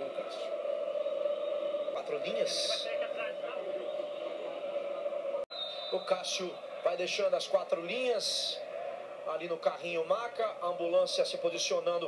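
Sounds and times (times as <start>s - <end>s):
faint male voices: 0.0s - 5.2s
steady background hum: 0.0s - 5.8s.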